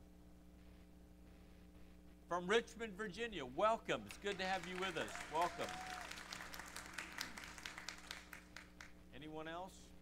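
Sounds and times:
steady low hum: 0:00.0 - 0:10.0
faint scattered applause: 0:04.0 - 0:09.0.

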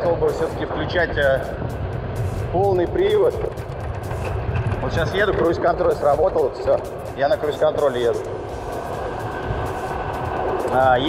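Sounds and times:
wind: 0:00.0 - 0:11.0
tyre rumble: 0:03.4 - 0:05.8.

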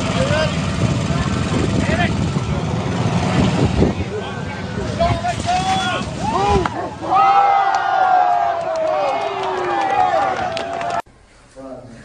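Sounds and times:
loud rumbling: 0:00.0 - 0:07.5.

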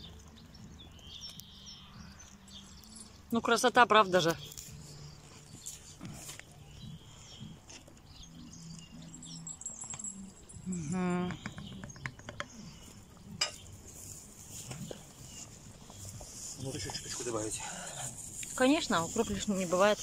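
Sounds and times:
light knocks and clinks: 0:09.0 - 0:12.5.

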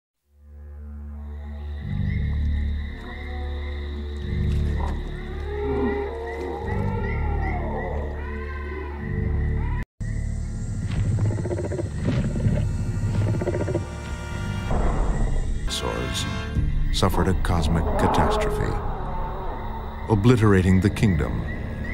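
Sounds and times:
rough animal sounds: 0:02.9 - 0:09.8, 0:10.8 - 0:14.2
wavering animal cries: 0:05.1 - 0:09.8.

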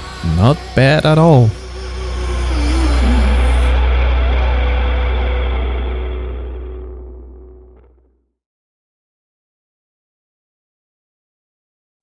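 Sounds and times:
faint higher tones: 0:01.5 - 0:07.8
deep low rumble: 0:01.6 - 0:08.2.

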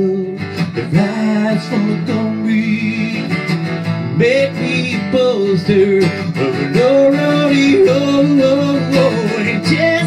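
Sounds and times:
man singing: 0:00.0 - 0:10.0
strummed acoustic guitar: 0:00.0 - 0:10.0.

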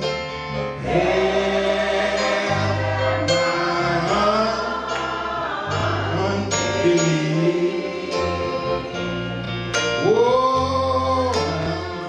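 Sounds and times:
instrumental accompaniment with bass: 0:00.0 - 0:12.0
backing voices singing: 0:00.5 - 0:09.4
man singing into a microphone: 0:03.3 - 0:04.7, 0:06.1 - 0:08.6, 0:10.0 - 0:12.0.

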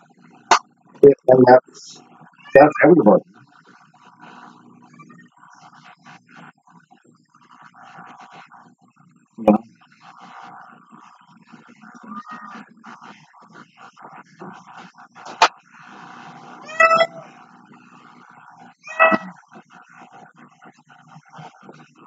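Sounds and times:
cat meowing: 0:12.0 - 0:12.6, 0:16.6 - 0:17.3, 0:18.8 - 0:19.4.

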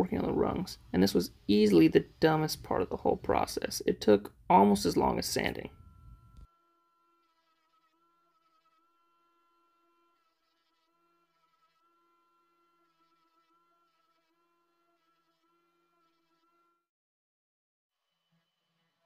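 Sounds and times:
faint steady whine: 0:04.3 - 0:06.5.

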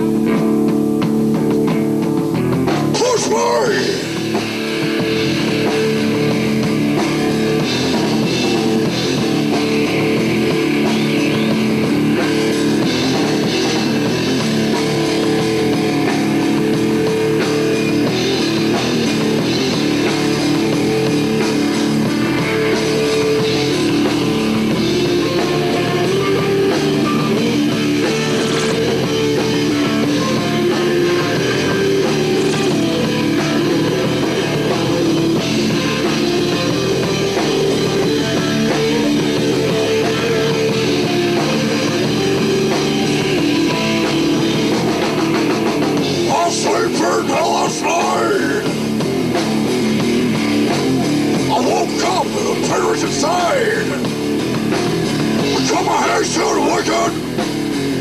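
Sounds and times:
loud rock music: 0:00.0 - 0:58.0.

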